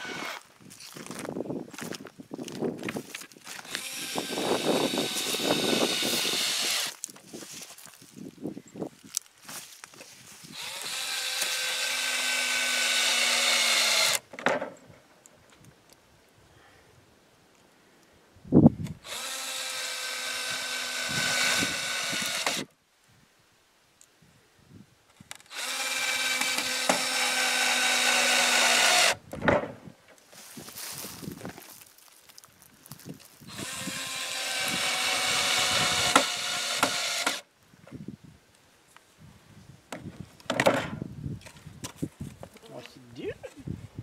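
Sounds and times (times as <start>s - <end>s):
cordless drill into wood: 0.0s - 0.4s, 3.6s - 7.1s, 10.5s - 14.3s, 18.9s - 22.7s, 25.4s - 29.2s, 33.5s - 37.5s.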